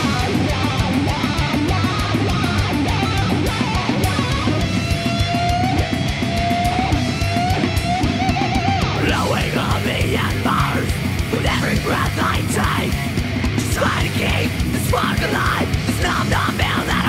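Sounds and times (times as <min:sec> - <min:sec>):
heavy metal instrumental: 0:00.0 - 0:17.0.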